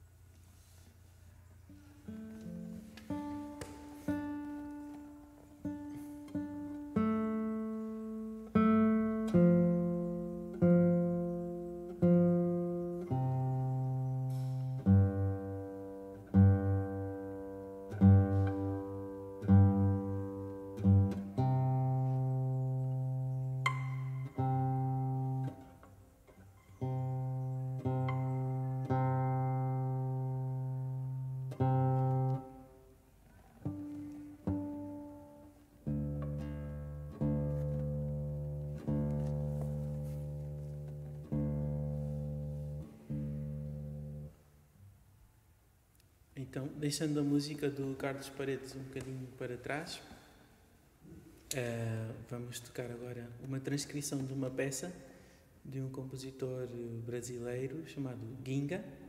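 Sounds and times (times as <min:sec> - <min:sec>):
guitar strings plucked: 0:02.1 - 0:32.9, 0:33.6 - 0:44.4
low guitar note plucked: 0:17.9 - 0:25.7.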